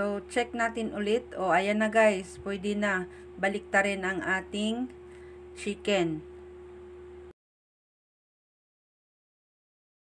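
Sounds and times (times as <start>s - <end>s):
faint steady hum: 0.0s - 7.4s.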